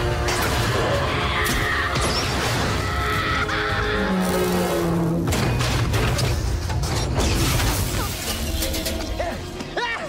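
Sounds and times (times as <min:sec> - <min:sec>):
action film music: 0:00.0 - 0:10.0.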